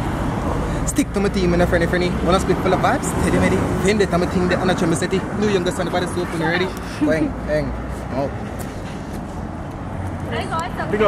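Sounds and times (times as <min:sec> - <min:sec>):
street noise rumble: 0:00.0 - 0:11.0.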